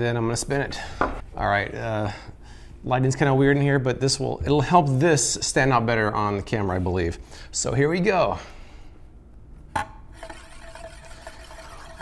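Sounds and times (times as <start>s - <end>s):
spinning disk whirr: 10.2s - 12.0s.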